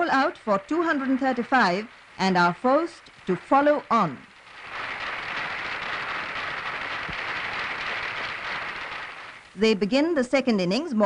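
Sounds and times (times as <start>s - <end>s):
spectators applauding: 4.5s - 9.6s.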